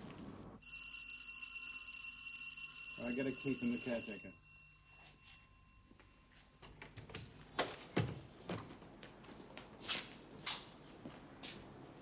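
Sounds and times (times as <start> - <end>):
bell ringing: 0.6 - 6.0.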